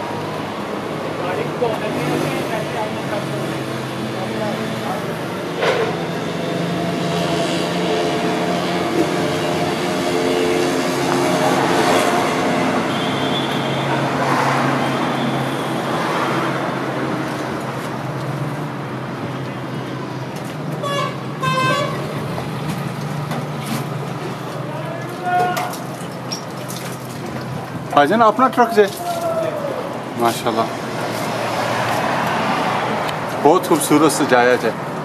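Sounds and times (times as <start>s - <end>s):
vehicle engine hum: 0.0s - 28.3s
vehicle horn tooting: 12.0s - 15.6s, 20.8s - 22.2s.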